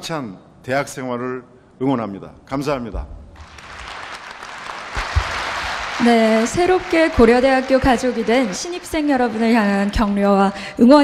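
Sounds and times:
audience applauding: 0:03.4 - 0:10.6.

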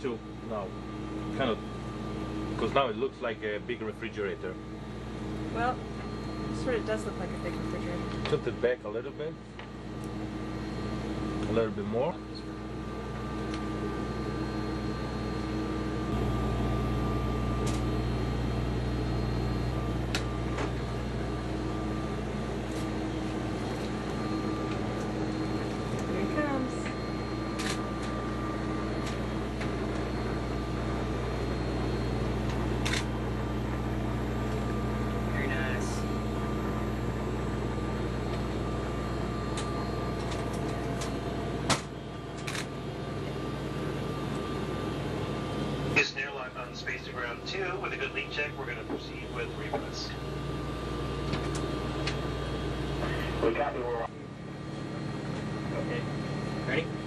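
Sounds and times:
ventilation fans humming: 0:00.0 - 0:57.0.

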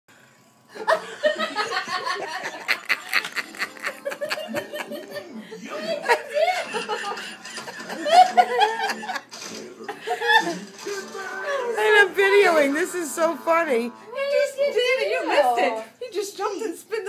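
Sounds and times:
people laughing: 0:00.7 - 0:11.8.

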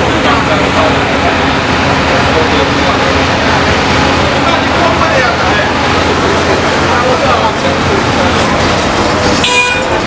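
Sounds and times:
street traffic noise: 0:00.0 - 0:10.0
vehicle horn toot: 0:09.4 - 0:10.0.

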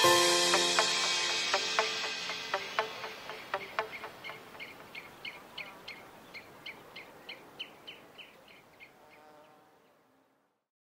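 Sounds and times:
high chirp-like music notes: 0:00.0 - 0:05.7.

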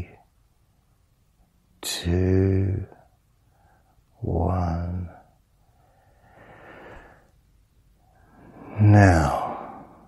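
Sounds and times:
man breathing and sighing: 0:05.7 - 0:07.3, 0:08.1 - 0:10.0.

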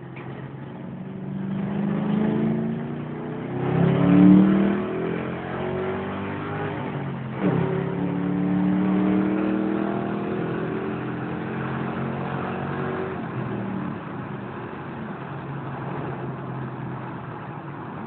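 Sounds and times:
car engine accelerating: 0:00.0 - 0:18.0.

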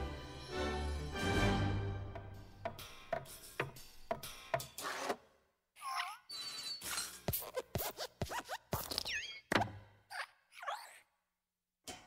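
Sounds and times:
knocks and thumps: 0:02.1 - 0:04.8.

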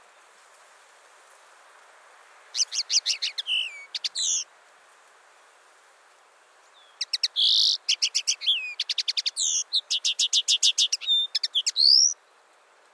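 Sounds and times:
bird twittering chirps and trills: 0:02.6 - 0:04.4, 0:06.8 - 0:12.2.

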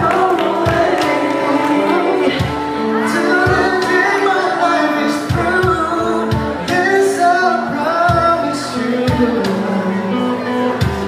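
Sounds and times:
low drum beats: 0:00.0 - 0:04.2, 0:05.2 - 0:07.0
acoustic guitar: 0:00.0 - 0:11.0
person singing: 0:00.0 - 0:11.0.

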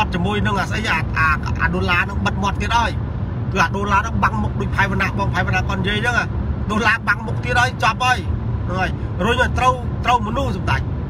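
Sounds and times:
man speaking: 0:00.0 - 0:10.9.

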